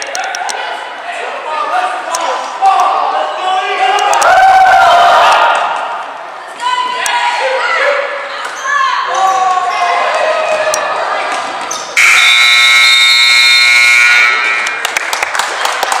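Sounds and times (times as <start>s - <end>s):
sneaker squeaks: 11.6s - 12.0s
scoreboard horn buzz: 12.0s - 14.9s.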